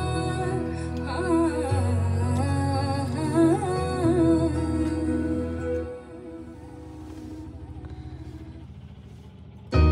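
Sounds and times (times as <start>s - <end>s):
car engine running: 0.0s - 9.9s
faint song from car stereo: 0.0s - 9.9s.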